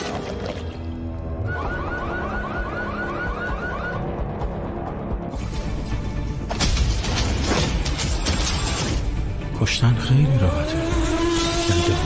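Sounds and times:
car alarm whooping: 0:01.4 - 0:04.1.

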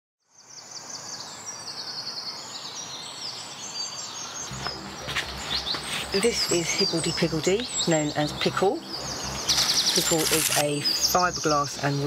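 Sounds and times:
background hiss: 0:00.3 - 0:12.0
birds chirping and trilling: 0:00.3 - 0:12.0
low pulsing hum: 0:04.5 - 0:11.2.

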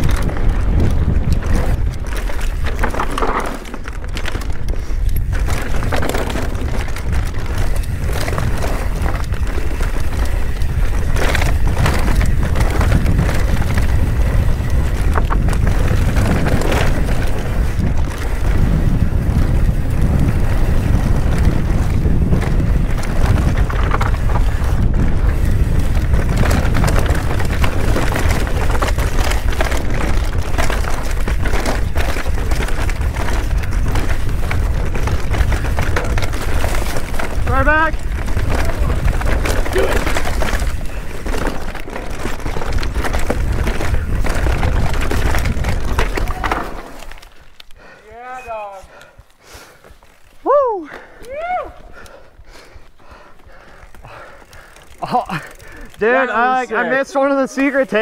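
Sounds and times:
wind rumble on microphone: 0:00.0 - 0:46.9
bike knocks and rattles: 0:00.0 - 0:47.4
bike tyres on dirt trail: 0:00.0 - 0:58.0.

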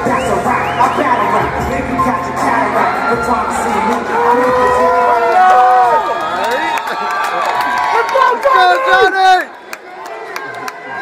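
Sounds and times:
arena crowd murmur: 0:00.0 - 0:11.0.

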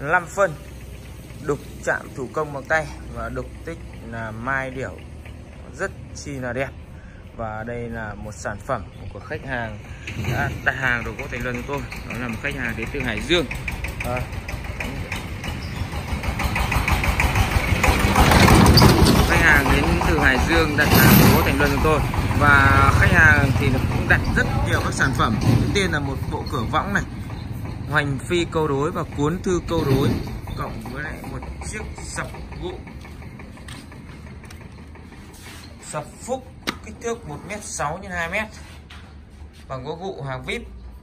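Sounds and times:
engine running: 0:00.0 - 0:41.0.

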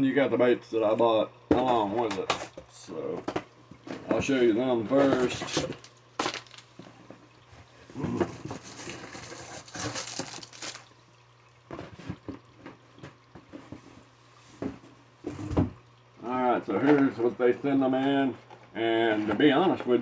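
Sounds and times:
cardboard boxes rustling and scraping: 0:08.0 - 0:10.8.

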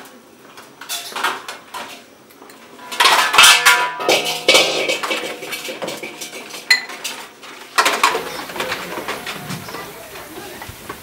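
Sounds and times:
metal dishes clinking: 0:00.8 - 0:10.0
dishes clattering: 0:00.8 - 0:10.6.

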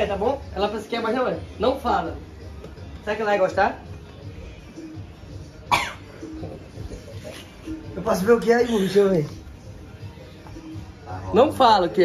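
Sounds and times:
person coughing: 0:05.7 - 0:06.2.

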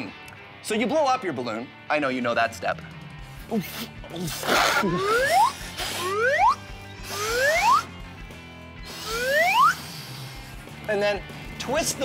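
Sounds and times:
quiet background music: 0:00.0 - 0:12.0
breaths blowing up balloon: 0:03.5 - 0:08.0, 0:08.8 - 0:10.8
rising slide whistle: 0:04.8 - 0:07.9, 0:08.9 - 0:10.0.

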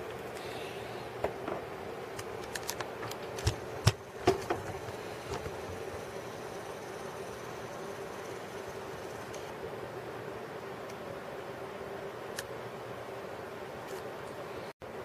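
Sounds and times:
faint hum: 0:00.0 - 0:15.0
handling clicks and knocks: 0:01.2 - 0:06.0.

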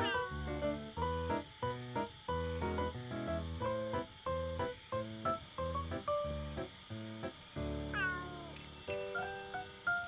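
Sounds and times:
cat meowing: 0:00.0 - 0:00.6, 0:07.9 - 0:08.6.

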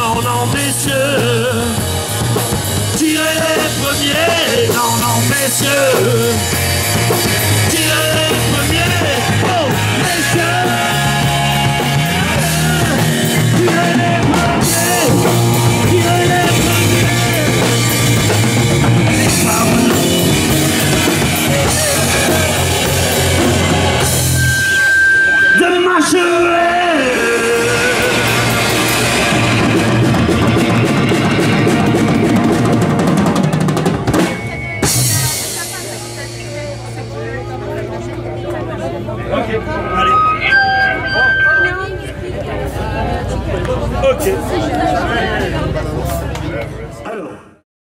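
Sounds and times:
live rock band playing: 0:00.0 - 0:43.4.

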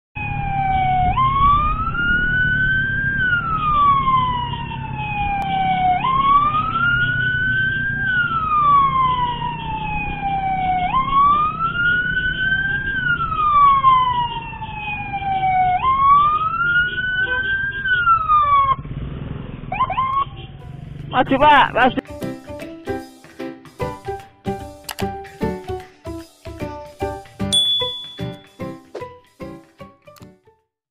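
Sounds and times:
electronic siren wailing: 0:00.2 - 0:18.8, 0:19.7 - 0:20.5
engine and traffic rumble: 0:00.2 - 0:22.6.

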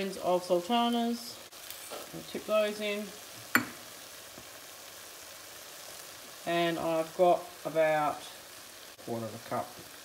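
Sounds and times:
food sizzling in oil: 0:00.0 - 0:10.0.

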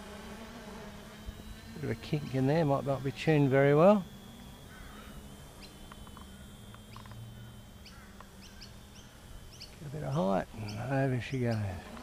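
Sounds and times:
distant electric motor whine: 0:00.0 - 0:12.0
small birds chirping: 0:00.9 - 0:12.0.

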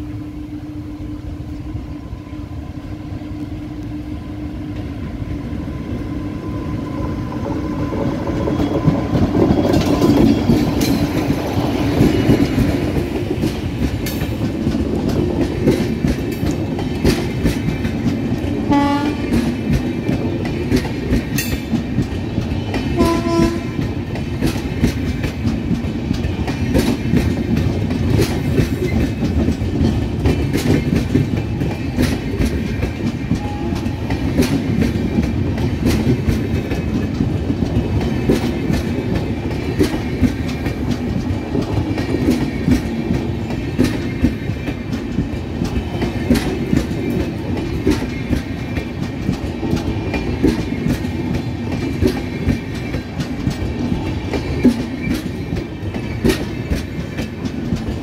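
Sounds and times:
train wheels clattering over rails: 0:06.7 - 0:58.0
train horn blasts: 0:18.7 - 0:19.4, 0:23.0 - 0:23.8, 0:33.4 - 0:34.1.

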